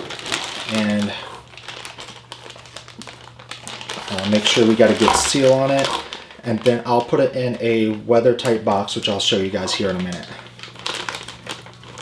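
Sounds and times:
plastic bag zipper clicking: 4.1s - 6.2s.

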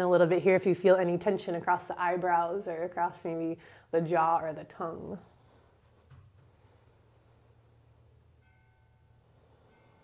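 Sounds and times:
low steady hum: 0.0s - 10.0s
faint bell-like chord: 7.2s - 10.0s.

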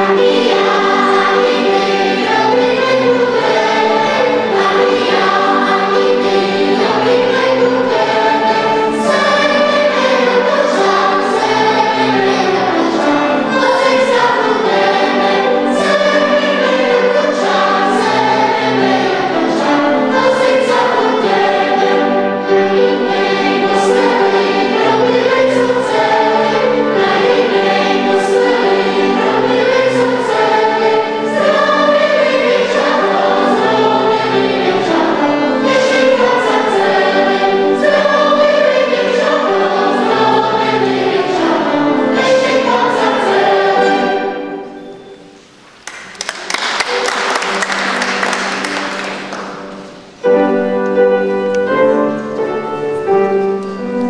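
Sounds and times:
choir singing folk song: 0.0s - 45.5s
piano: 0.0s - 54.0s
violin: 0.0s - 54.0s.

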